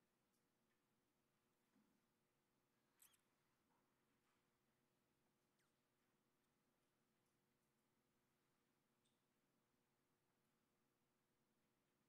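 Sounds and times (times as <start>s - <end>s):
faint high-pitched squeak: 2.9s - 3.4s.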